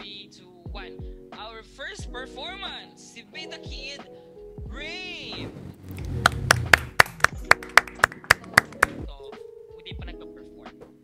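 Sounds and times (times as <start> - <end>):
hands clapping: 6.0 - 9.1.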